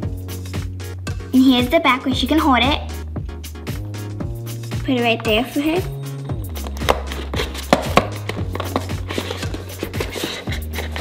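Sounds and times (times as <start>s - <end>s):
background music with bass: 0.0s - 11.0s
taps and clicks on packaging: 6.6s - 11.0s.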